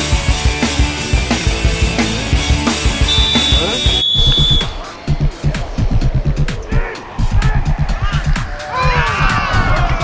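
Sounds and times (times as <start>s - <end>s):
music with steady drum beat: 0.0s - 8.2s
high held note: 3.0s - 4.8s.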